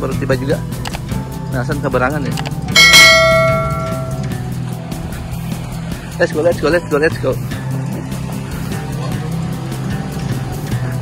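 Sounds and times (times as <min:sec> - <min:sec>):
bright metallic ding: 0:02.8 - 0:04.4.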